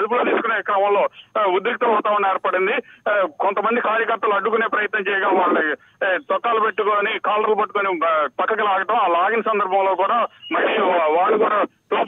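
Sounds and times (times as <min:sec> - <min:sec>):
person talking over phone line: 0:00.0 - 0:12.0.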